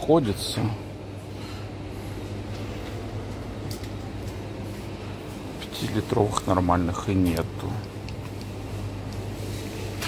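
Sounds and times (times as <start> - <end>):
low hum of coolers: 0.0 - 10.0.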